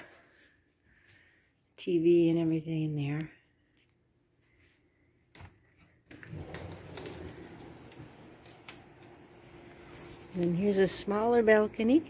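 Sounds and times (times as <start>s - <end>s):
steady low hum: 6.2s - 12.0s
insects chirping: 6.4s - 12.0s.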